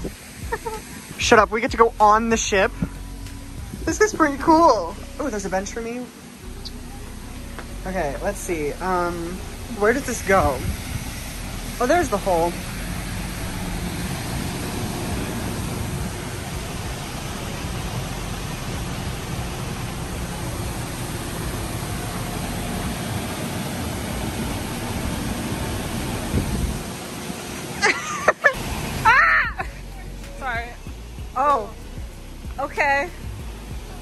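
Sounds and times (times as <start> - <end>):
rushing outdoor background noise: 0.0 - 34.0.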